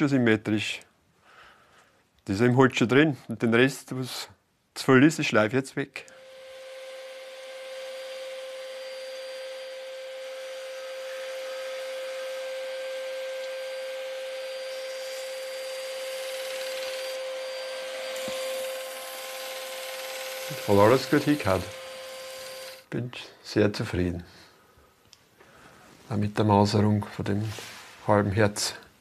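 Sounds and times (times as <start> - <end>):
disc sander grinding wood: 6.1 - 22.9.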